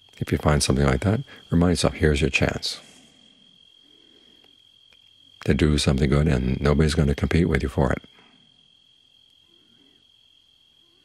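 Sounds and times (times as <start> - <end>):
cricket trill: 0.0 - 11.0.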